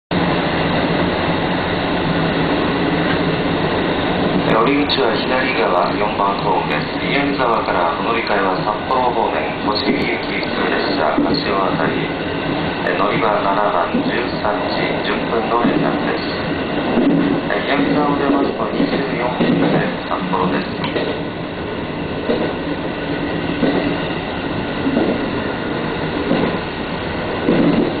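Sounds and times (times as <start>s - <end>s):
train wheels rumbling on rail: 0.1s - 28.0s.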